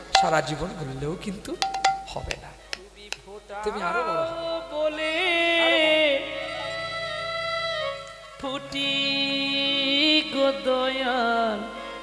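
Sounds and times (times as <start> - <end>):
musical accompaniment: 0.0 - 12.0
man speaking and half-singing: 0.2 - 4.6, 5.2 - 7.2.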